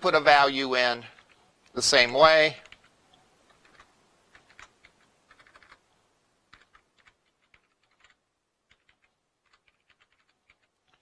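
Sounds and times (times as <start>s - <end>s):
typing on computer keyboard: 1.1s - 1.4s, 2.6s - 2.9s, 3.5s - 5.8s, 6.5s - 11.0s.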